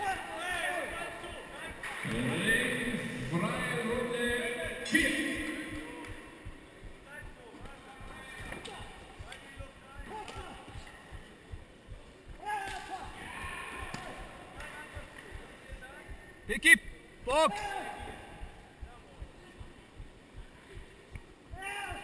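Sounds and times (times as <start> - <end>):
people shouting: 12.4 - 14.5, 17.3 - 18.4, 21.5 - 22.0.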